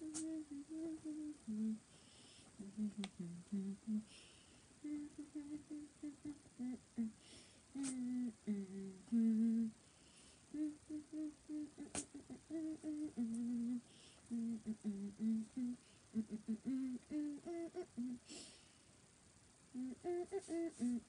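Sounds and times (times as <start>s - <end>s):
woman humming a melody: 0.0s - 1.9s, 2.6s - 4.2s, 4.8s - 9.8s, 10.5s - 18.5s, 19.7s - 21.0s.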